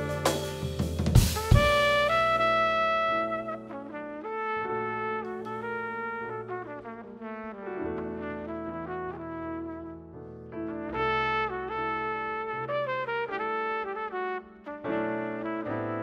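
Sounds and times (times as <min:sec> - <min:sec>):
drums and cymbals crash: 0:00.0 - 0:02.1
drums: 0:00.0 - 0:03.5
double bass: 0:00.0 - 0:04.0
trumpet melody: 0:00.0 - 0:16.0.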